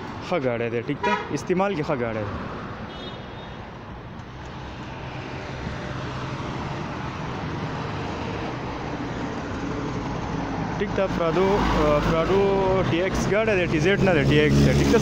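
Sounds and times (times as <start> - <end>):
passing road traffic: 0.0 - 15.0
truck engine hum: 4.1 - 15.0.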